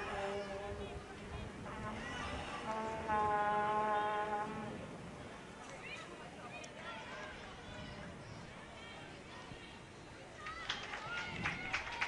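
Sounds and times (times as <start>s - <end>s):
horn long steady blast: 0.0s - 5.1s.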